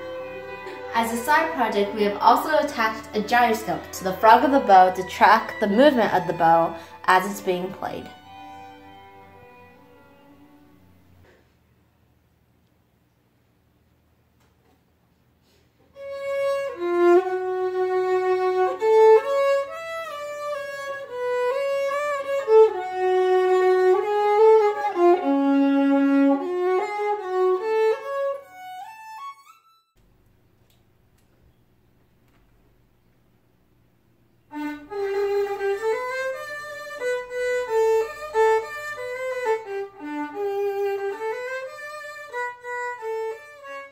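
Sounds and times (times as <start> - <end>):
solo violin melody: 0.0 - 11.2, 16.0 - 30.0, 34.5 - 43.9.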